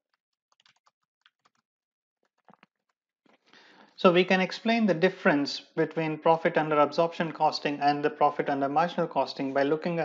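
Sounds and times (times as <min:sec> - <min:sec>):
faint keyboard typing: 0:00.5 - 0:01.6.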